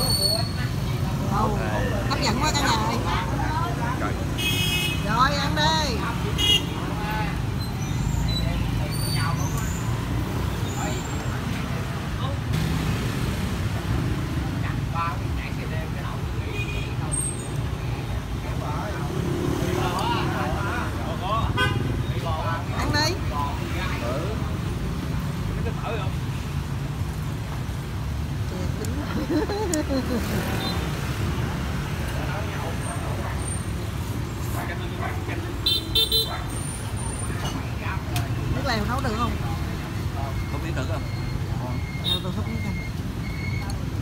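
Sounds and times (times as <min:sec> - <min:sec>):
passing motorbikes and cars: 0:00.0 - 0:44.0
car horn toot: 0:04.4 - 0:05.0.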